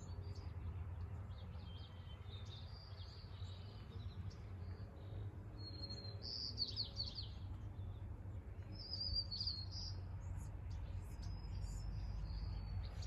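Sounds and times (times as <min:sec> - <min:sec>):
small birds chirping: 0:00.0 - 0:13.0
steady low rumble: 0:06.8 - 0:13.0.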